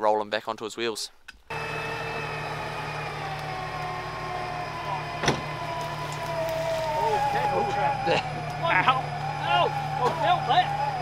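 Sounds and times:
electric winch motor whine: 1.5 - 11.0.

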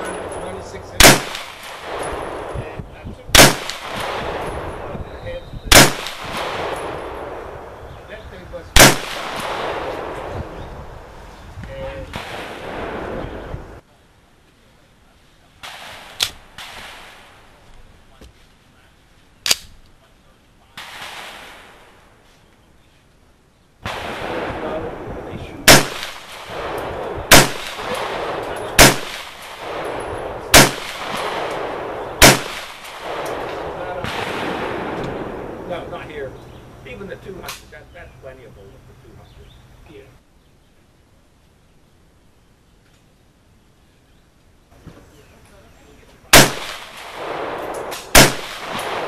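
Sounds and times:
faint gunshot reports: 0.0 - 2.6, 3.3 - 7.3, 8.8 - 10.6, 23.8 - 35.6, 46.3 - 49.0
pistol shots: 0.0 - 2.6, 3.3 - 5.0, 5.7 - 7.6, 8.8 - 10.4, 12.1 - 13.3, 15.6 - 17.4, 20.8 - 22.0, 23.8 - 35.6, 46.3 - 49.0.

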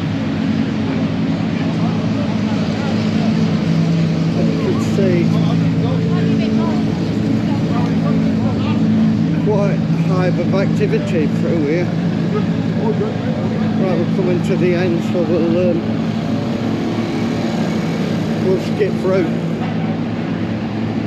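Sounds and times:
race car engines idling: 0.0 - 21.0
voices talking: 0.6 - 20.2.

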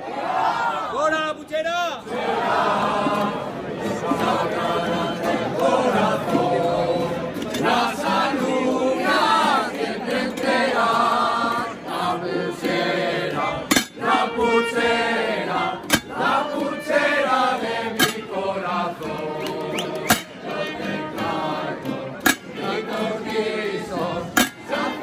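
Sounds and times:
group singing in chorus: 2.0 - 25.0.

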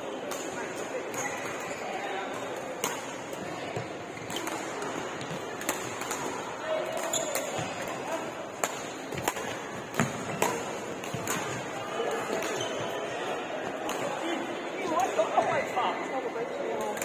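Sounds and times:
rackets hitting shuttlecock: 2.3 - 12.8.

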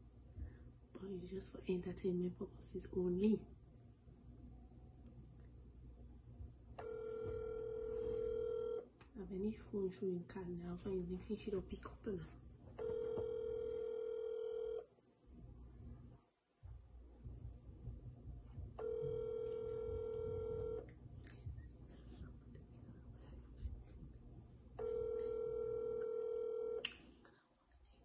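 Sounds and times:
phone ringback tone: 6.8 - 8.8, 12.8 - 14.8, 18.8 - 20.8, 24.8 - 26.8.

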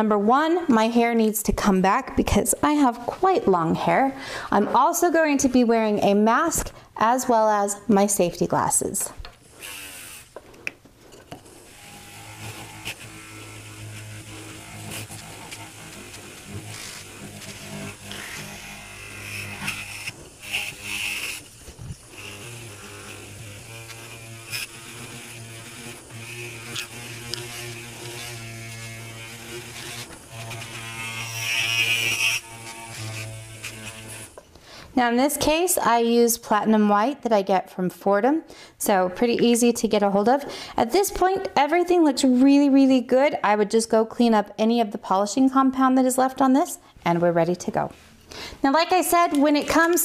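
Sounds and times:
buffing wheel rubbing metal: 11.5 - 34.4
micromotor hum and whine: 11.6 - 34.4.

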